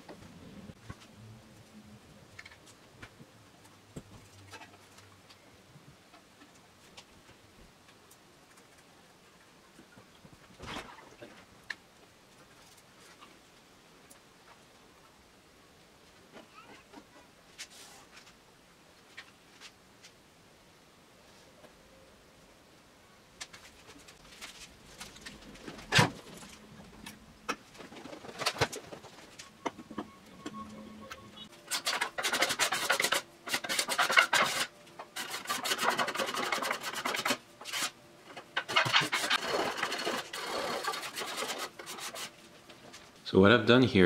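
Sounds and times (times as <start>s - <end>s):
card scraper shaving wood: 31.7s - 38.0s, 38.6s - 42.3s.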